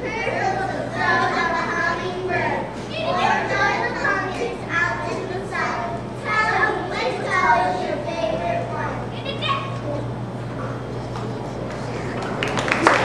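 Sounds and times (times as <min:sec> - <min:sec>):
children speaking: 0:00.0 - 0:13.0
steady low hum: 0:00.0 - 0:13.0.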